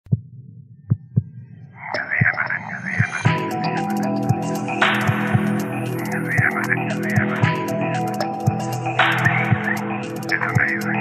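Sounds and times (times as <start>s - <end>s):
deep heartbeat-like thumps: 0.0s - 1.4s.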